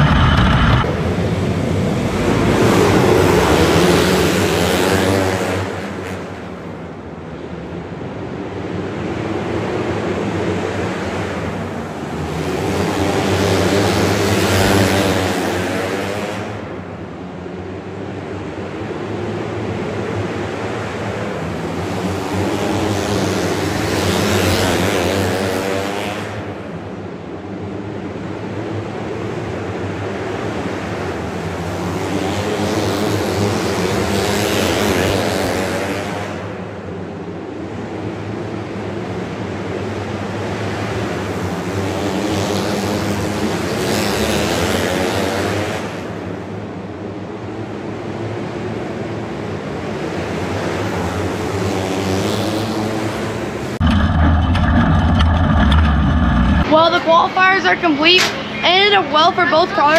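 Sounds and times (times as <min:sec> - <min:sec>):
karts racing at high revs: 0:00.0 - 0:59.9.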